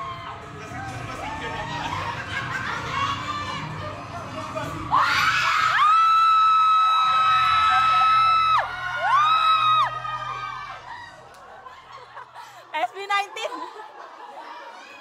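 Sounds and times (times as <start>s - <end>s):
excited crowd noise: 0.0s - 15.0s.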